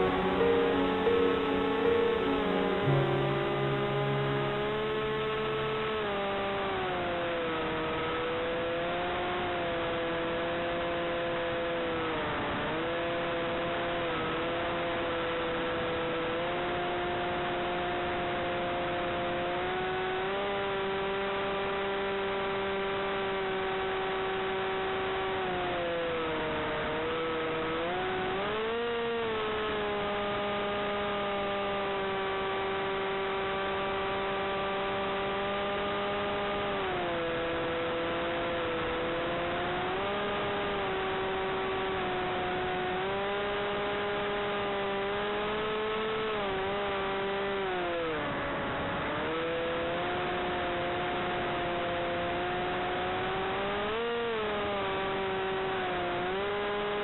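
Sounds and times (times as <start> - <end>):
electric motor propeller whine: 0.0 - 57.0.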